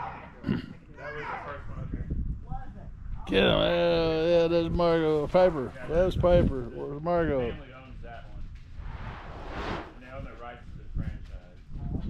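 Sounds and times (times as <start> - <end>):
wind rumble on microphone: 1.5 - 12.0
short rush of noise: 8.8 - 10.1.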